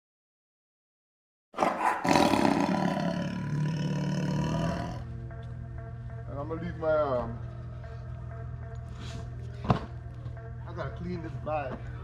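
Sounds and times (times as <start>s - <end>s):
music: 2.1s - 12.0s.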